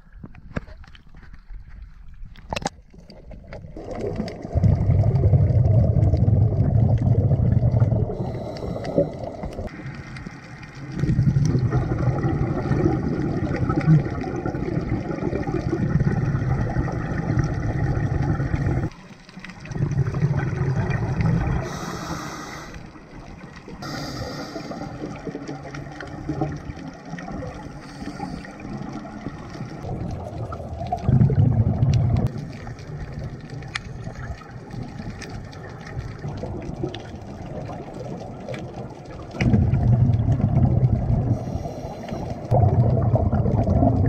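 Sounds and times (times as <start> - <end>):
bubbles gurgling underwater: 2.5 - 22.2, 22.8 - 44.0
regulator hissing inhalations: 21.6 - 22.9, 23.8 - 25.0, 27.8 - 28.6, 41.3 - 42.5.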